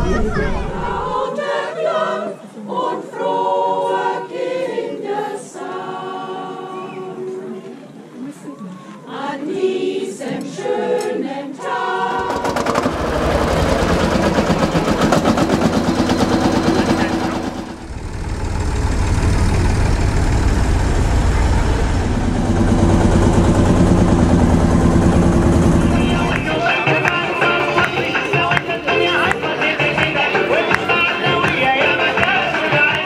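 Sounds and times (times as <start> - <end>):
choir singing: 0.0 - 7.6, 9.0 - 17.9, 19.5 - 33.0
tractor engine rapid beat: 12.1 - 33.0.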